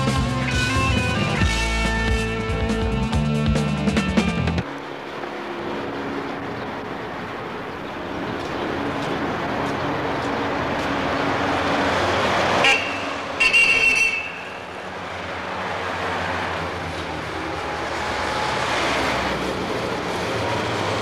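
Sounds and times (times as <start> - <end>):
city street traffic: 0.0 - 21.0
car horn honking: 12.6 - 14.8.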